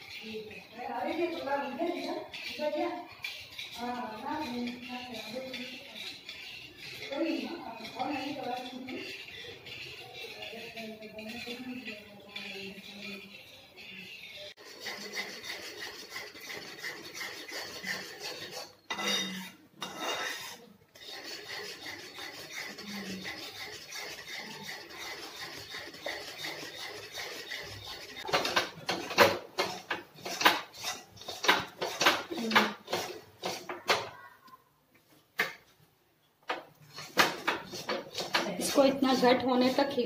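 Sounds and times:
metal spoon scraping a pan: 0.0 - 34.2, 36.5 - 40.0.

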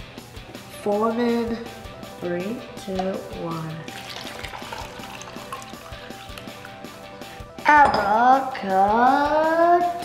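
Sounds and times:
background music with steady beat: 0.0 - 10.0
water pouring into plastic cup: 3.9 - 6.8.

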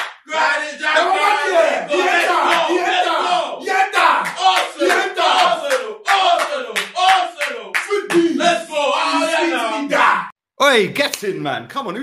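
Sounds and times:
men shouting in celebration: 0.3 - 10.3.

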